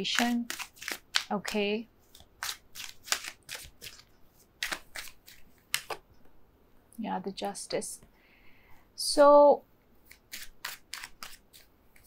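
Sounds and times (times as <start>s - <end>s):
cards being shuffled: 0.0s - 6.0s, 10.1s - 12.0s.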